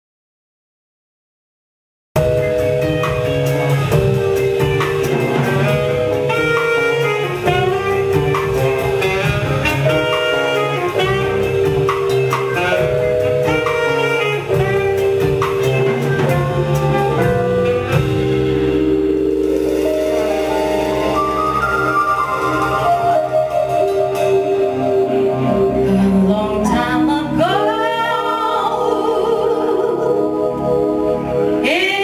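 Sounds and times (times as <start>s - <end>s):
drum groove: 2.2s - 24.8s
held keyboard chords: 2.2s - 32.0s
jazz band playing: 2.2s - 32.0s.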